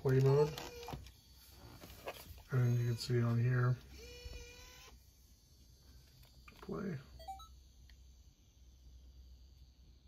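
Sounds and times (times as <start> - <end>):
camcorder tape mechanism whir: 0.0 - 1.2, 3.8 - 5.1.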